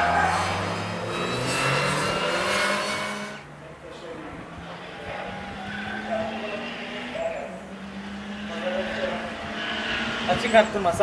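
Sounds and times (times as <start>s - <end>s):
race car engines: 0.0s - 11.0s
tyre squeals: 4.6s - 10.8s.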